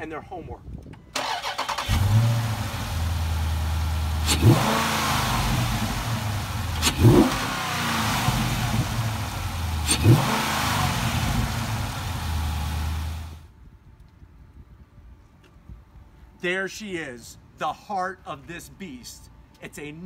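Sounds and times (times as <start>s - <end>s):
car engine idling and revving: 1.4s - 13.4s.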